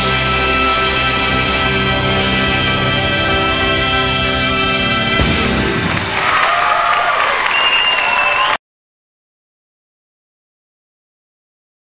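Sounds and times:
audience applauding and cheering: 0:05.2 - 0:08.6.

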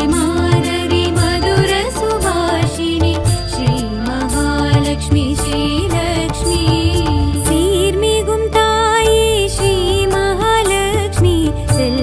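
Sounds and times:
devotional music with percussion: 0:00.0 - 0:12.0.

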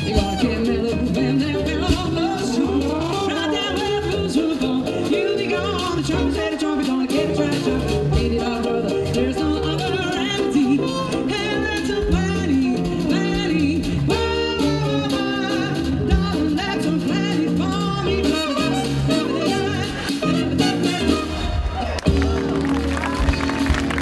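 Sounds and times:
trumpet: 0:00.0 - 0:04.1, 0:18.0 - 0:24.0
woman singing: 0:00.0 - 0:21.5
drum kit: 0:00.0 - 0:24.0.

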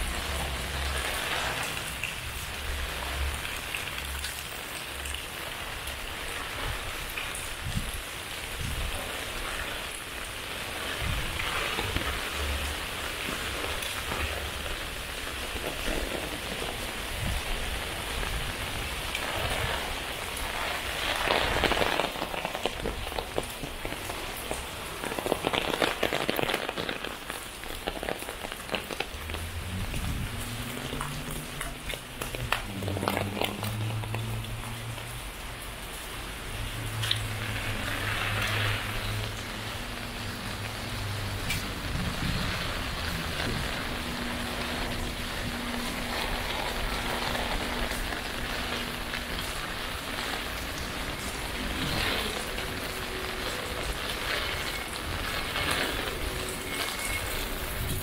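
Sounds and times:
rain on wet pavement and foliage: 0:00.0 - 0:58.0.

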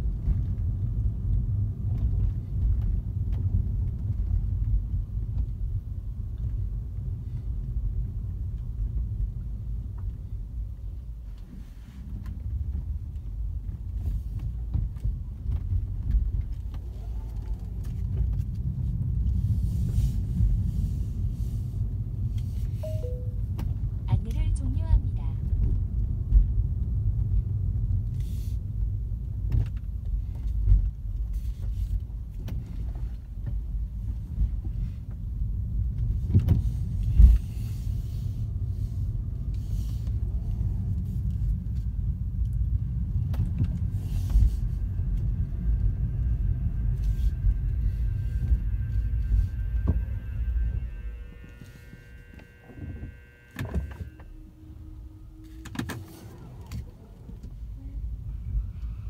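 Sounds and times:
road and tyre rumble: 0:00.0 - 0:59.0
faint steady high tones: 0:22.8 - 0:23.6.

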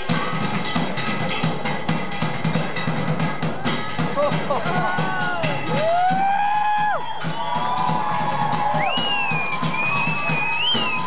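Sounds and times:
drum line beat: 0:00.0 - 0:11.0.

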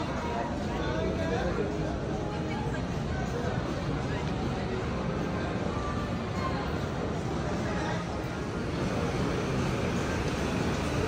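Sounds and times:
busy indoor shop ambience: 0:00.0 - 0:11.0.

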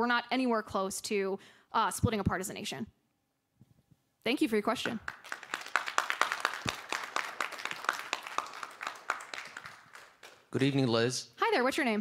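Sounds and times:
audience applauding: 0:05.0 - 0:10.9.

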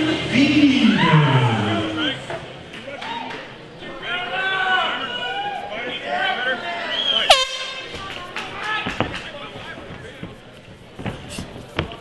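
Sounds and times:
air horn blast: 0:07.3 - 0:07.9.

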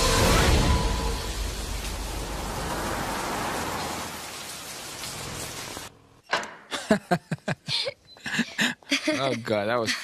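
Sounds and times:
heavy rain on street: 0:00.0 - 0:06.2.

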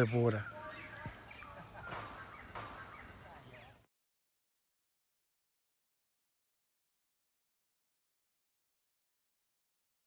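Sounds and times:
birds calling: 0:00.0 - 0:03.9.

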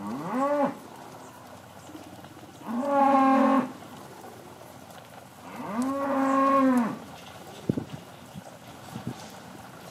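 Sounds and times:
cow mooing: 0:00.0 - 0:00.8, 0:02.6 - 0:03.8, 0:05.4 - 0:07.0.

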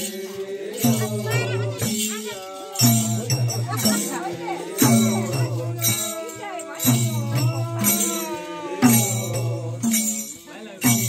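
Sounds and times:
group singing: 0:00.0 - 0:11.0
jingling: 0:00.0 - 0:11.0
deep drum beats: 0:02.8 - 0:11.0.

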